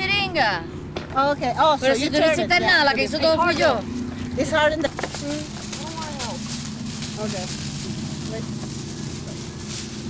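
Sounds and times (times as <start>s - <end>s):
faint voices: 0.0s - 10.0s
low hum: 0.0s - 10.0s.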